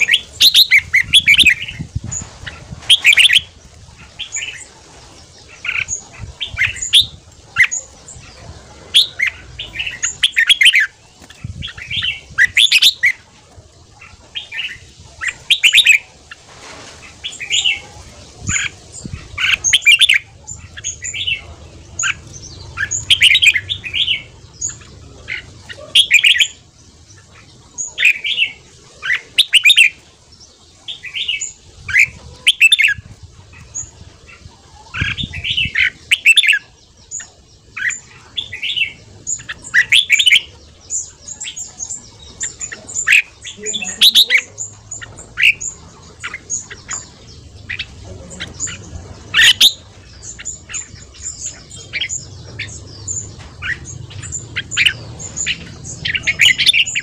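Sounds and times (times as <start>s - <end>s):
bird singing warbling phrases: 0.0s - 16.4s, 17.1s - 57.0s.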